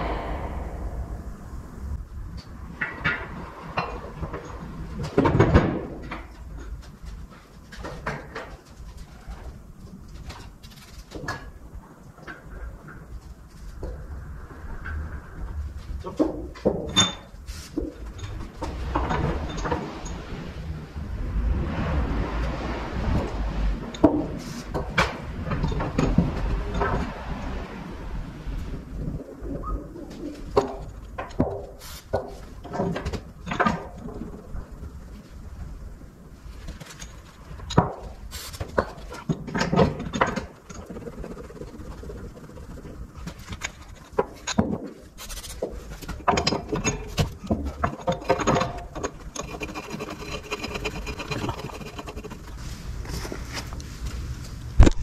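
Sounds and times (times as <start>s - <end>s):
metal pins clanking: 45.8s - 52.6s.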